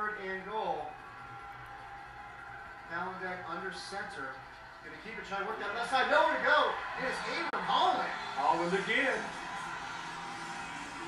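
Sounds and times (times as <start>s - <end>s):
football broadcast on tv: 0.0s - 11.0s.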